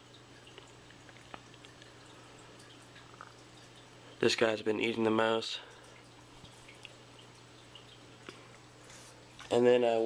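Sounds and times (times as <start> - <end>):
water dripping and trickling: 0.0 - 9.8.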